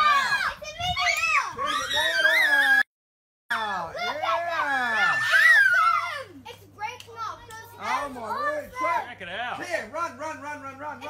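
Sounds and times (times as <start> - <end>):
excited high-pitched shouting: 0.0 - 2.9, 3.6 - 6.5.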